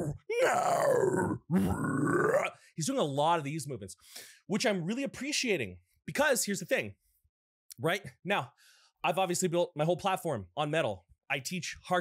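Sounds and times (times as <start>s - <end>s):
man growling metal vocals: 0.0s - 2.6s.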